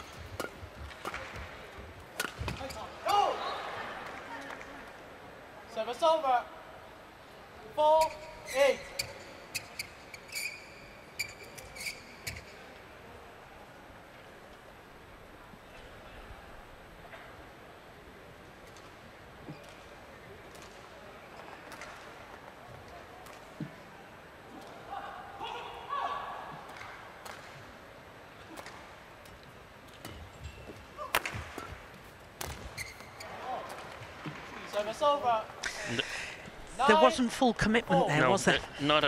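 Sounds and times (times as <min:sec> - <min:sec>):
badminton court sounds: 0:00.0 - 0:03.3, 0:28.4 - 0:36.0
racket striking shuttlecock: 0:02.2 - 0:02.6, 0:31.0 - 0:31.8.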